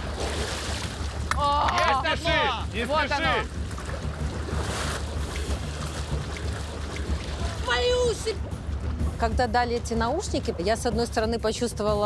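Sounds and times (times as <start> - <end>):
muddy water splashing: 0.0 - 10.6.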